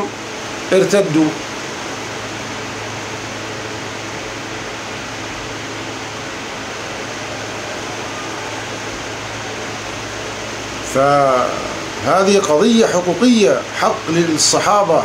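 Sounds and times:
low constant hum: 0.0 - 15.0
steady background hiss: 0.0 - 15.0.

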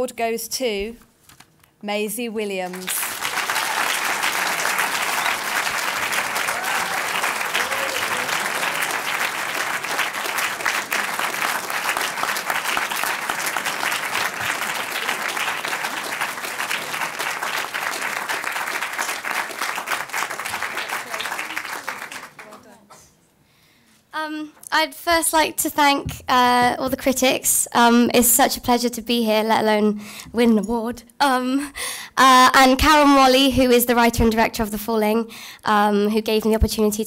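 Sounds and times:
audience applauding: 2.7 - 22.8.

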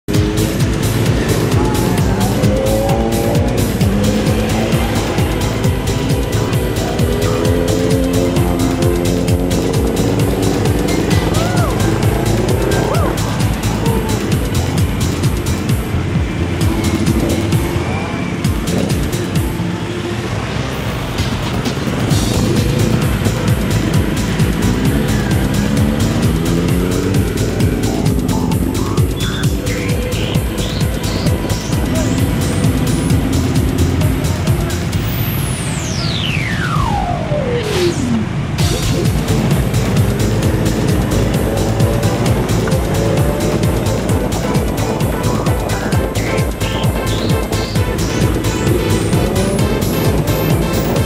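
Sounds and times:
background music with steady beat: 0.0 - 37.1, 38.2 - 51.0
motorcycle engines revving: 0.0 - 51.0.

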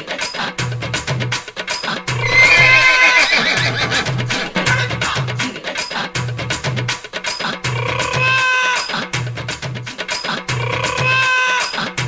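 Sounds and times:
music with percussive beat: 0.0 - 12.0
horse whinny: 2.2 - 4.8.

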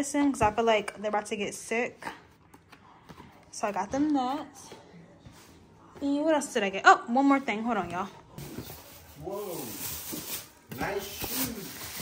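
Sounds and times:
plastic bag rustling: 8.4 - 12.0.

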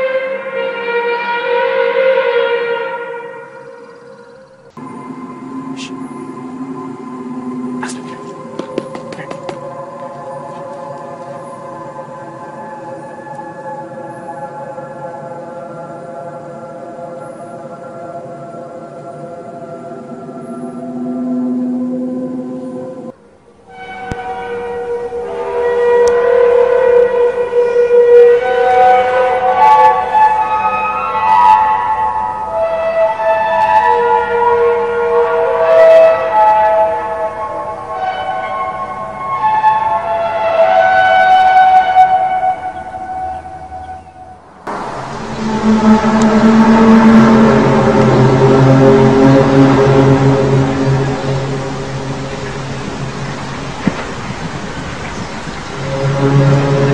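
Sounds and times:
trumpet-like drone from sky: 0.0 - 56.9
wavering sliding tones: 44.7 - 56.9.

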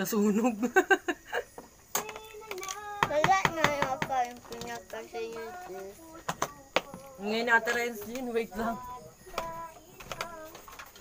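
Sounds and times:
child vocalizing sing-song: 2.0 - 11.0.

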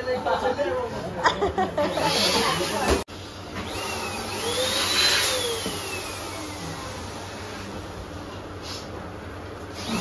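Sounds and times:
electric balloon pump whining: 3.6 - 7.3.

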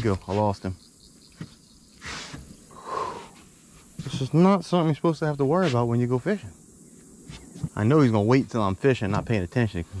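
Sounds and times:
man breathing out heavily: 2.0 - 3.4.

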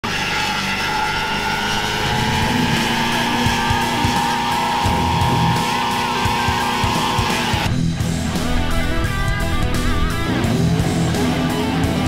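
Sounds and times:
car engine revving high: 0.0 - 7.7
tyre squeal: 0.1 - 7.7.

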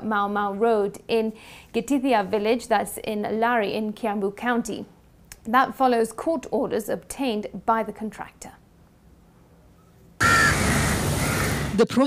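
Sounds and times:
harsh bird call: 10.2 - 11.8
loud outdoor noise: 10.2 - 11.8.

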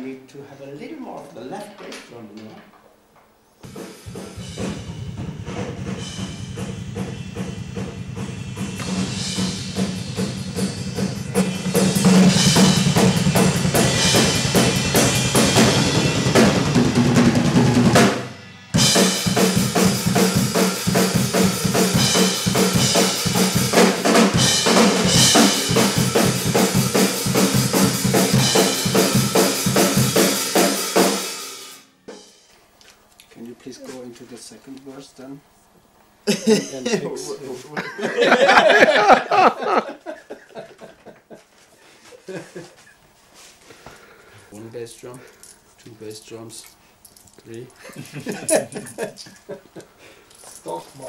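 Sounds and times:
metal drum kit played fast: 3.6 - 32.5.

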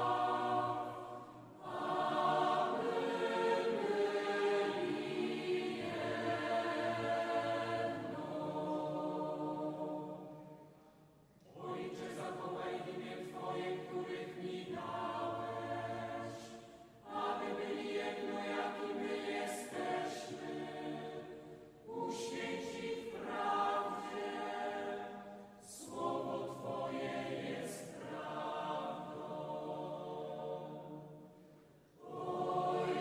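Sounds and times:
voices singing a hymn: 0.0 - 10.8, 11.4 - 33.0.

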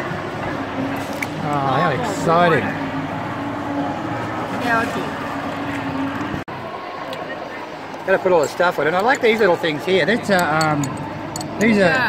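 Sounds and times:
general din of crowd: 0.0 - 12.0.

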